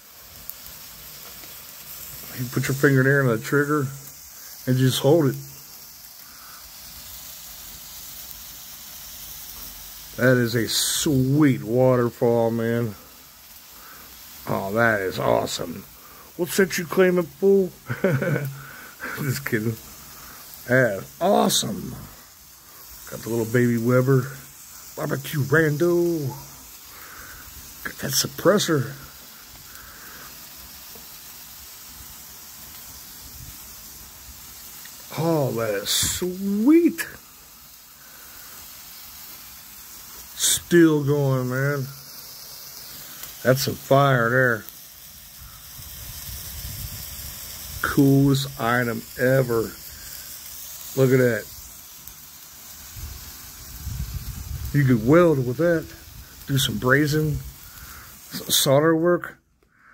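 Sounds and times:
firework fountain hissing: 0:00.0 - 0:59.9.

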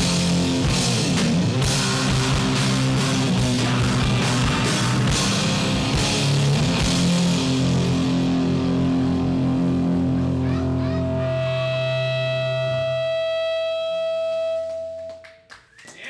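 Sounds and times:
distorted guitar and bass chord: 0:00.0 - 0:15.2
high-pitched guitar feedback: 0:00.0 - 0:15.3.

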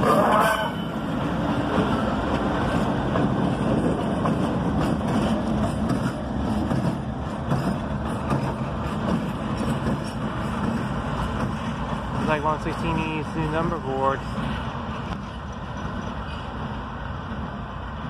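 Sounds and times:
diesel locomotive engine drone: 0:00.0 - 0:18.0
wheels rumbling on rails: 0:00.0 - 0:18.0.

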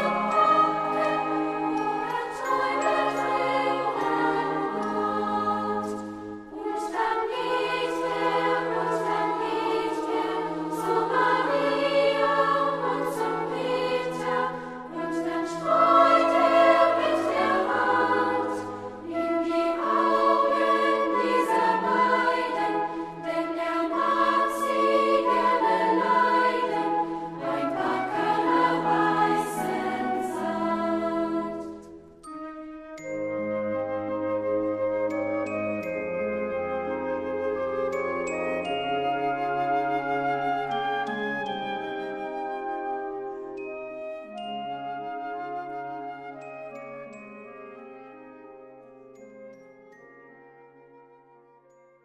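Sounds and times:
children's choir singing: 0:00.0 - 0:32.0.

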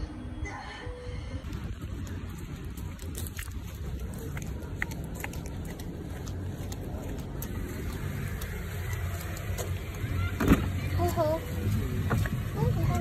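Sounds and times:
car engine idling: 0:01.5 - 0:13.0
voices: 0:03.8 - 0:13.0.

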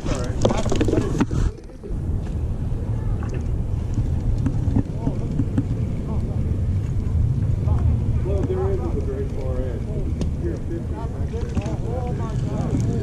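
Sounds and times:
faint voices: 0:00.0 - 0:13.0
wind rumbling on microphone: 0:00.0 - 0:13.0.

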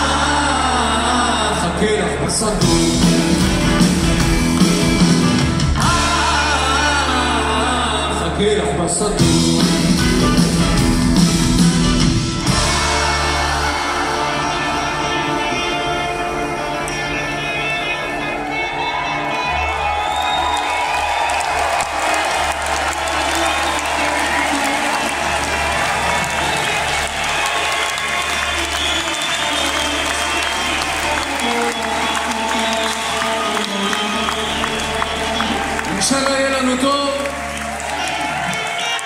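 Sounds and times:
crowd applauding and cheering: 0:00.0 - 0:39.0
live rock band playing: 0:00.0 - 0:39.0.

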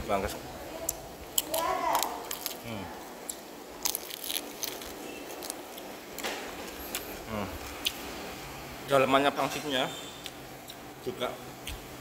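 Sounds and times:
crunchy chewing: 0:01.4 - 0:02.7, 0:03.3 - 0:05.9
person humming: 0:07.3 - 0:07.6.

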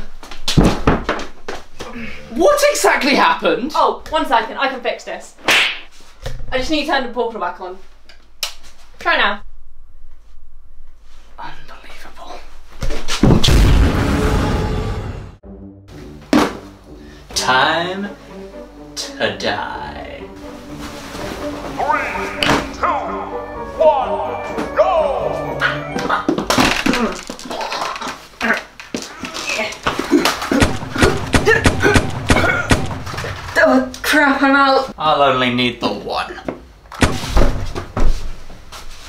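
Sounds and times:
explosion boom with rumbling tail: 0:13.4 - 0:15.3
sharp musical hit: 0:13.5 - 0:15.5
background music: 0:13.6 - 0:26.8, 0:30.5 - 0:34.9
people scuffling: 0:20.5 - 0:22.8, 0:25.4 - 0:33.9, 0:37.2 - 0:39.0
strained yelps and grunts: 0:21.8 - 0:23.3.

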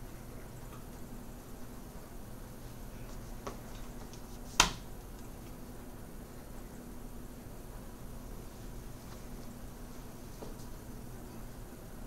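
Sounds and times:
faint room hum: 0:00.0 - 0:12.0
sharp hand snap: 0:04.6 - 0:04.8.

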